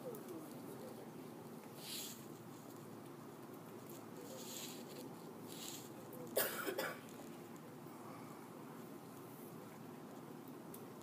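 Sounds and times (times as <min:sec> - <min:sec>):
faint room noise: 0:00.0 - 0:11.0
person coughing: 0:06.4 - 0:07.1.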